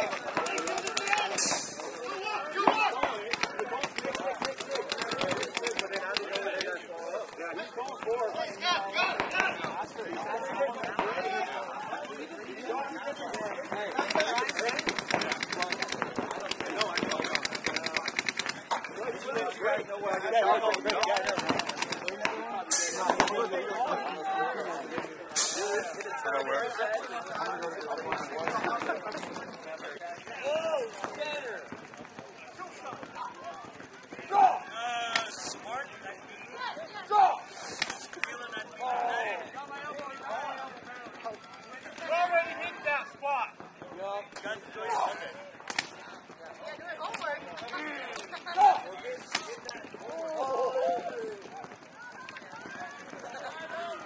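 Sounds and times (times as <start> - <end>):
paintball guns firing: 0.0 - 6.8, 9.0 - 12.0, 13.2 - 19.6, 20.5 - 23.6, 27.3 - 29.6, 30.2 - 36.0, 43.6 - 50.0
voices calling out: 0.0 - 54.0.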